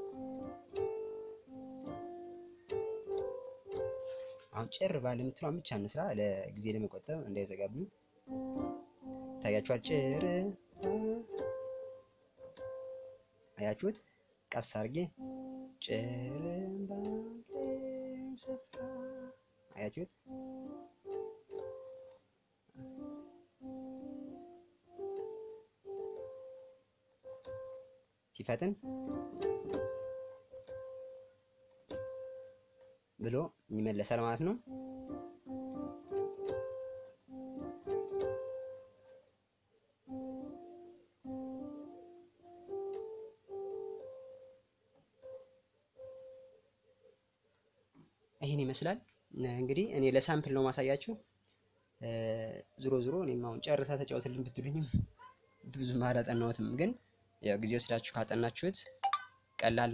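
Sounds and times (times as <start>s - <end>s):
piano notes: 0.0s - 14.0s, 14.7s - 39.3s, 40.1s - 44.6s.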